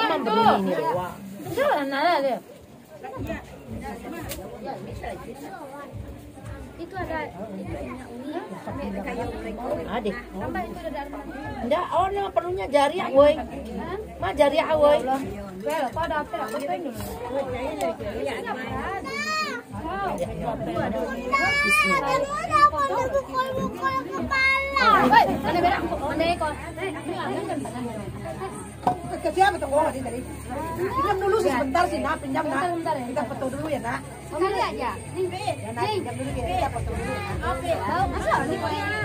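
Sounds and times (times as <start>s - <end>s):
people chatting: 0.0s - 39.0s
women and children talking: 0.0s - 39.0s.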